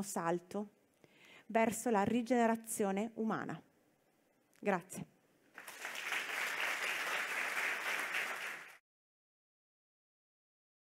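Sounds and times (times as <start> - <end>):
audience applauding: 5.5 - 8.8.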